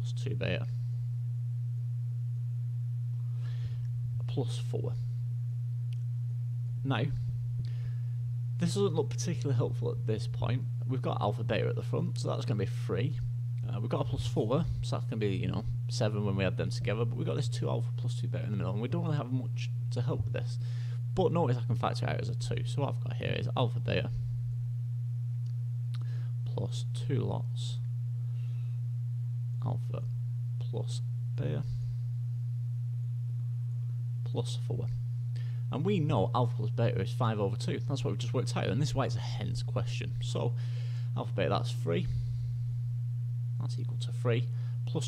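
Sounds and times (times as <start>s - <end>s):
low-pitched hum: 0.0s - 45.0s.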